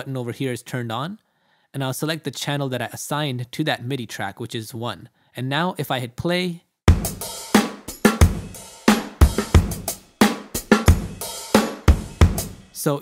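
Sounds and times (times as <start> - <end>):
drum loop beat: 6.9 - 12.8.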